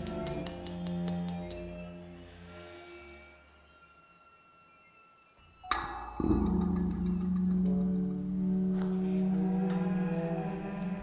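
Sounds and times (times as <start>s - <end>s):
quiet sustained tones: 0.0s - 11.0s
sharp struck ringing attack: 5.6s - 10.7s
low cello note: 5.8s - 11.0s.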